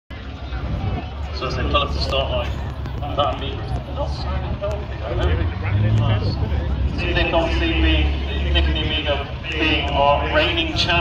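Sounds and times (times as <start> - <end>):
car engines rumbling: 0.1 - 11.0.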